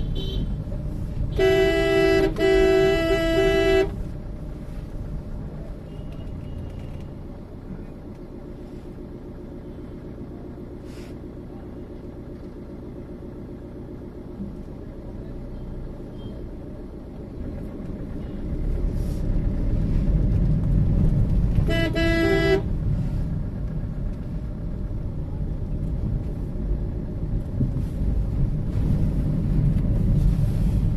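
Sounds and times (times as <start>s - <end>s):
car horn: 0.0s - 0.6s, 1.3s - 4.1s, 21.6s - 22.7s
road rumble: 0.0s - 30.9s
vehicle engine: 0.0s - 30.9s.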